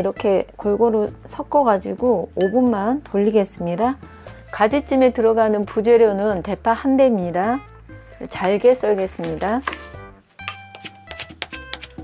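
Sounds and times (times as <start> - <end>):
background music: 0.0 - 12.0
knife chopping on wooden board: 9.6 - 12.0.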